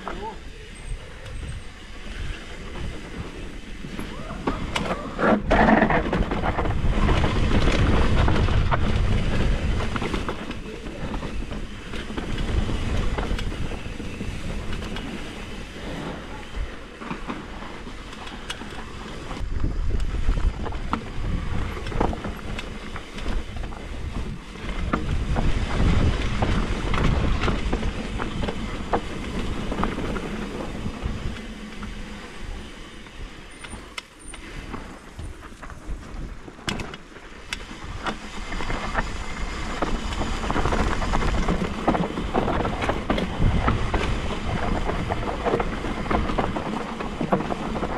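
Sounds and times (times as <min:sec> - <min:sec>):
bike clicks and rattles: 0:00.0 - 0:47.9
tyres rumbling over dirt and stones: 0:02.1 - 0:47.9.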